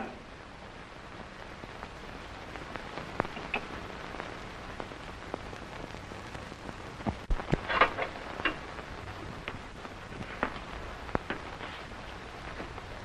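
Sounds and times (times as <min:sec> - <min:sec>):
film soundtrack hiss: 0:00.0 - 0:13.0
faint clicks and pops: 0:01.2 - 0:13.0.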